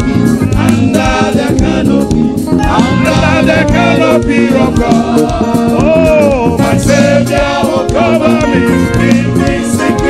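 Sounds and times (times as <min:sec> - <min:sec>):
band with steady beat: 0:00.0 - 0:10.0
choir singing gospel: 0:00.0 - 0:10.0.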